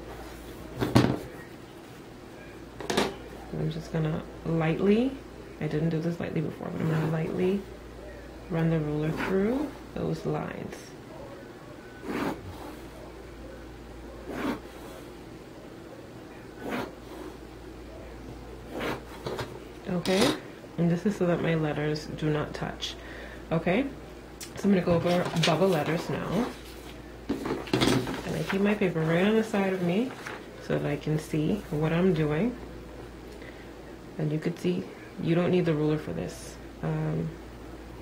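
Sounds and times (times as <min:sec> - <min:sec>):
pencil scratching along ruler: 0:12.0 - 0:12.8, 0:14.3 - 0:15.0, 0:16.6 - 0:17.4, 0:18.7 - 0:19.1.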